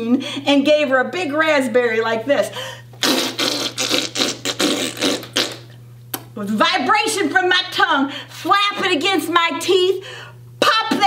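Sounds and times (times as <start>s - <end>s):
person blowing a raspberry: 3.0s - 5.8s.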